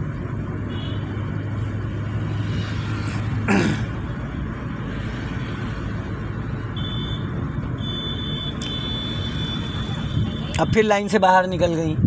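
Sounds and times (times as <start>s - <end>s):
car engine and road rumble: 0.0s - 12.0s.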